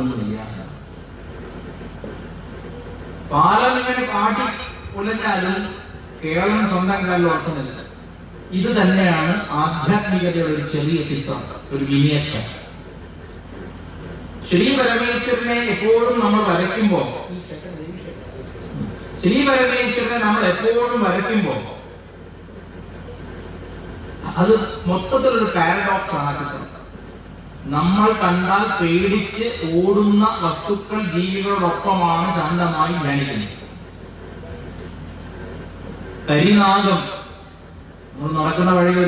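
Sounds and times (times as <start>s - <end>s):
man talking over loudspeaker: 0.0s - 0.8s, 3.3s - 7.9s, 8.5s - 12.8s, 14.5s - 21.9s, 24.2s - 26.8s, 27.7s - 33.7s, 36.3s - 37.4s, 38.2s - 39.0s
crickets chirring: 0.0s - 39.0s.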